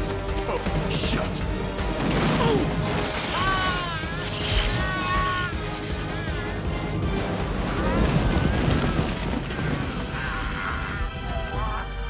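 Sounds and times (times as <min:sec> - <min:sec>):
dramatic film score music: 0:00.0 - 0:12.0
large explosion rumbling: 0:06.9 - 0:11.5.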